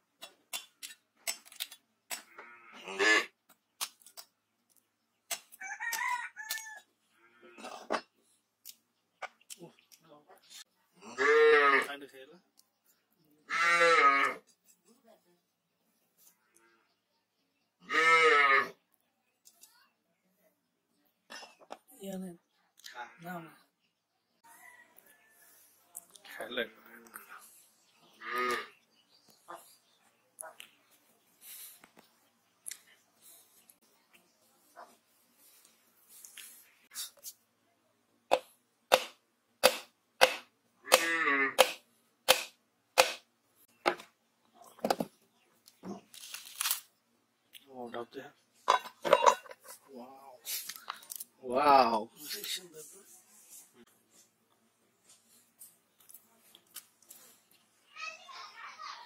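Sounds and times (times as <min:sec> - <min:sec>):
farm animal calling: 0:13.4 - 0:14.4, 0:28.1 - 0:28.8
stick knocking machete blade: 0:38.3 - 0:43.2.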